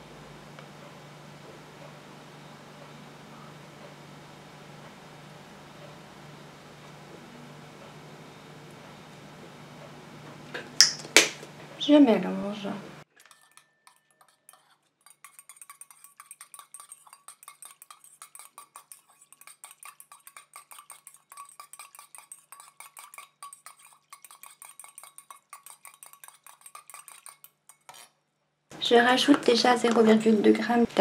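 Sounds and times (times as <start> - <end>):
metal whisk clinking in steel bowl: 13.1 - 28.1.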